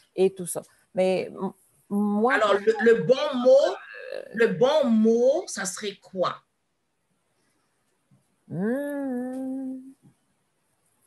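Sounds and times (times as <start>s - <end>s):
woman humming: 8.5s - 10.0s.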